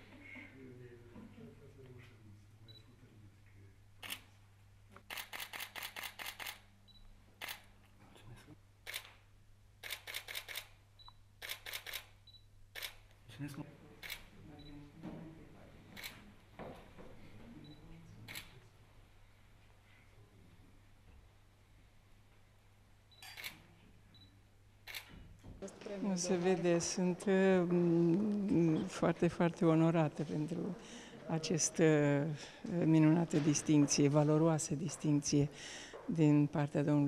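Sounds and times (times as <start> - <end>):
camera shutters clicking: 5.0 - 6.6, 9.8 - 10.8, 11.4 - 12.2, 12.8 - 13.0.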